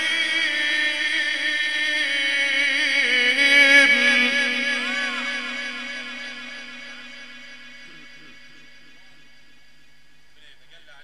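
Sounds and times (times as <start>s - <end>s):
echoing sung note over loudspeaker: 0.0s - 9.9s.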